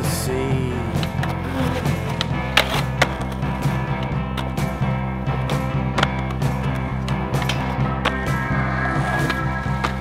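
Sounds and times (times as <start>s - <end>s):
background music: 0.0s - 10.0s
skateboard wheels rolling on concrete: 0.9s - 8.2s
skateboard clacks: 1.0s - 7.6s.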